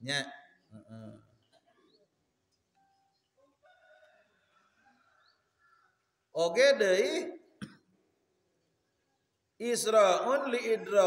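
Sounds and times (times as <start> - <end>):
man speaking: 0.0 - 1.2, 6.4 - 7.4, 9.6 - 11.0.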